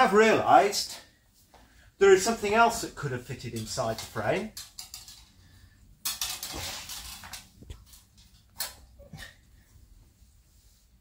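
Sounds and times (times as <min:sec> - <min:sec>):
metal clinks and scraping: 0:03.6 - 0:08.5.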